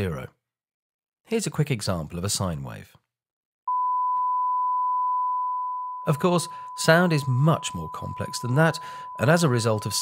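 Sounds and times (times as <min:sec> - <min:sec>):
sine-wave test tone: 0:03.7 - 0:10.0.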